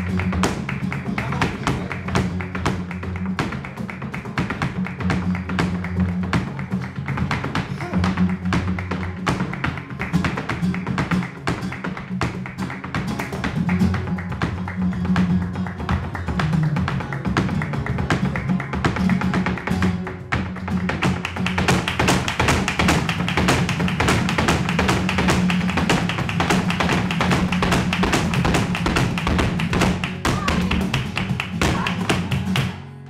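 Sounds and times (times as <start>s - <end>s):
rapid handclaps: 0.0s - 32.8s
heeled dance footwork: 0.0s - 32.9s
flamenco guitar: 0.0s - 33.0s.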